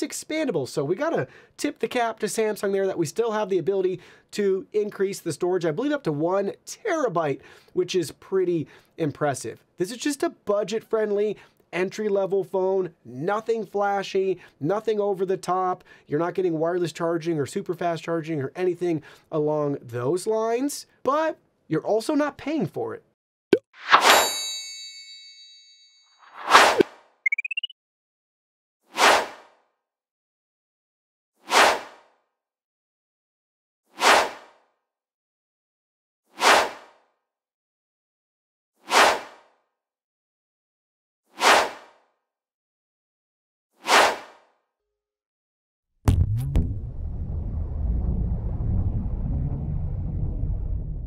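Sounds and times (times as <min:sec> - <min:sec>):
bright metallic ding: 0:24.1 - 0:25.9
quick swish: 0:26.3 - 0:26.9, 0:28.9 - 0:29.6, 0:31.4 - 0:32.1, 0:33.9 - 0:34.6, 0:36.3 - 0:37.0, 0:38.8 - 0:39.5, 0:41.3 - 0:42.0, 0:43.8 - 0:44.5
sharp hits: 0:46.1 - 0:48.6
steady low rumble: 0:46.1 - 0:51.0
whoosh: 0:46.1 - 0:51.0.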